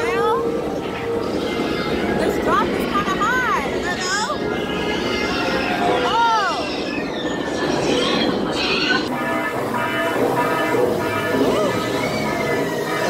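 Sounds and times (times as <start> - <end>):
droning music: 0.0 - 13.0.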